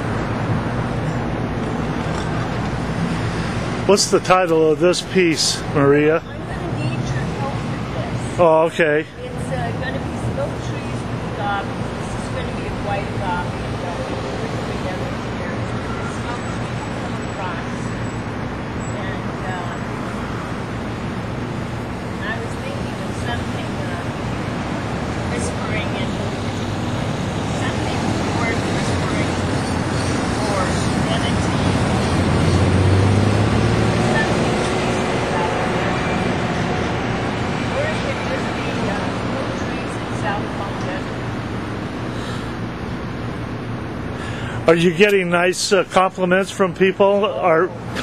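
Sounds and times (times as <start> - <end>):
road traffic passing: 0.0 - 48.0
indistinct voices: 33.9 - 42.8.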